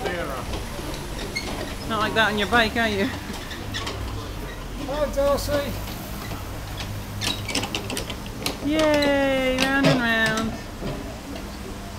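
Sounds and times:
carousel mechanical hum: 0.0s - 11.9s
clicks and knocks from ride: 5.5s - 11.5s.

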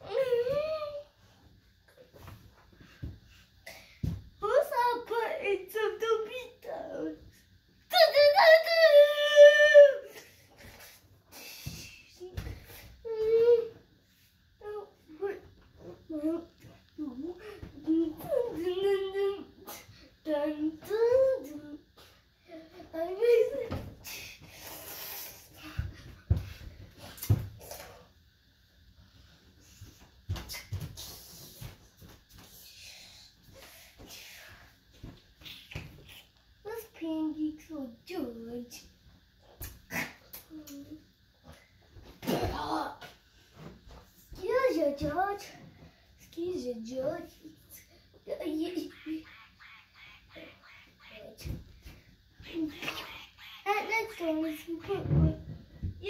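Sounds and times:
child's voice: 4.4s - 7.2s, 7.9s - 10.2s, 14.6s - 21.8s, 22.5s - 23.9s, 36.7s - 38.8s, 40.4s - 41.0s, 44.3s - 51.6s, 52.4s - 55.5s.

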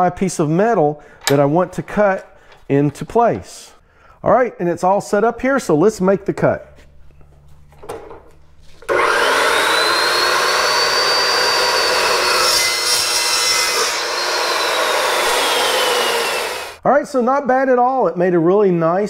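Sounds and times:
chop saw cutting steel tube: 8.9s - 16.8s.

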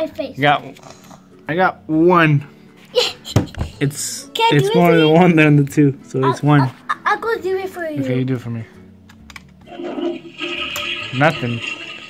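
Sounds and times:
toy flushing sound effect: 9.7s - 12.0s.

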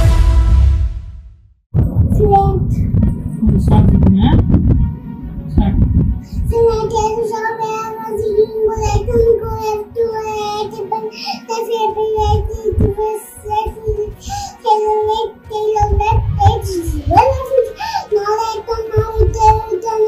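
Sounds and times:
background music: 0.0s - 1.2s, 1.8s - 20.0s
girl chanting: 6.5s - 20.0s.

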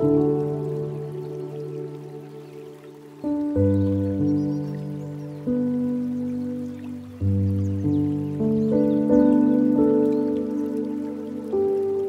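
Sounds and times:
flowing water: 0.0s - 12.0s
slow gentle piano music: 0.0s - 12.0s.

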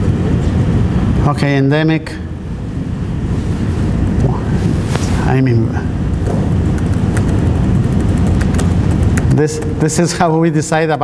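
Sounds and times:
room and microphone noise: 0.0s - 11.0s.

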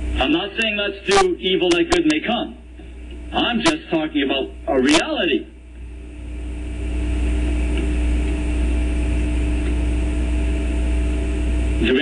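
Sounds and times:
machine hum with low rumble: 0.0s - 12.0s.

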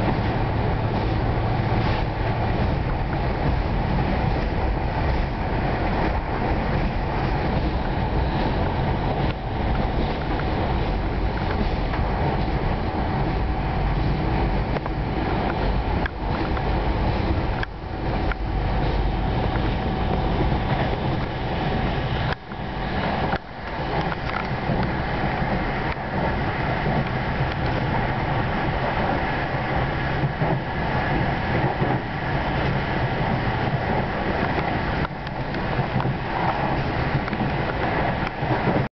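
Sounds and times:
passenger train running noise: 0.0s - 38.9s.

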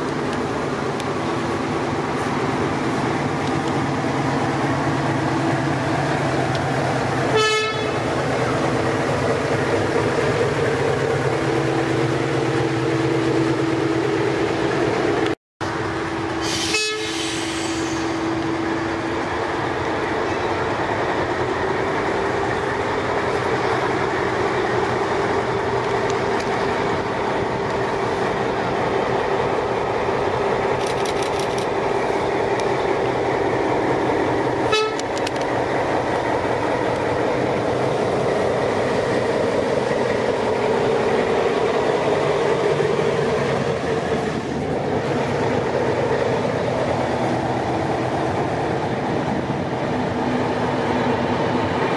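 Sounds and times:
diesel locomotive engine running: 0.0s - 51.9s
carriages rolling on track: 18.7s - 51.9s.

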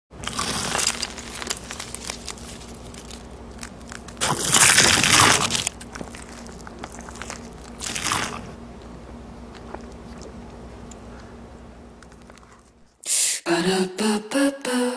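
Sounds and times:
crunching of fried chicken: 0.2s - 11.1s.

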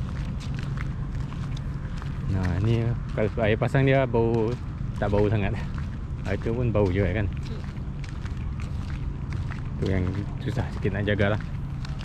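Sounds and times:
footsteps on pavement: 0.0s - 12.0s
low outdoor rumble: 0.0s - 12.0s.

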